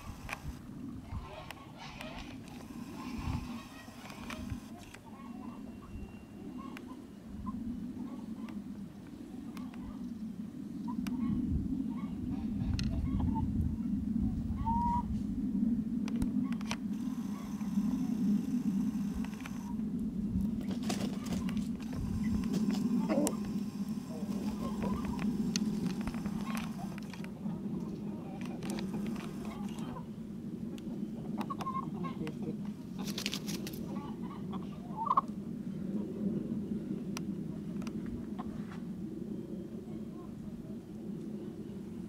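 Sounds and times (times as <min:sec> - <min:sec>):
chickens clucking softly: 0:00.0 - 0:10.2, 0:10.8 - 0:13.5, 0:16.4 - 0:19.8, 0:20.6 - 0:33.2, 0:33.8 - 0:35.4
steady low rumble: 0:07.0 - 0:31.5.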